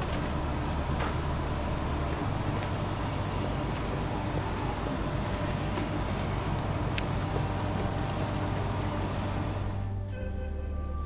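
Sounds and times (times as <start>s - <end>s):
low outdoor rumble: 0.0s - 11.0s
faint background music: 2.8s - 11.0s.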